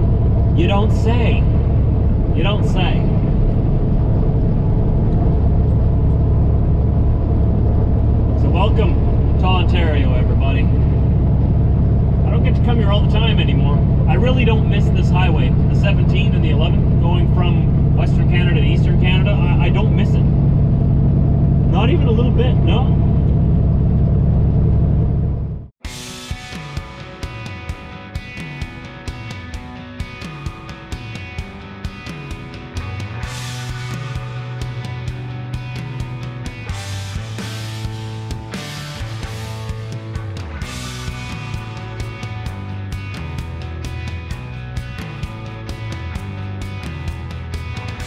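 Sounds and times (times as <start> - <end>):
rock music: 0.0 - 5.3, 8.2 - 23.2, 25.8 - 48.0
truck diesel engine droning: 0.0 - 25.7, 32.8 - 48.0
road noise inside cab: 0.0 - 25.8
tyres on highway: 0.0 - 25.8.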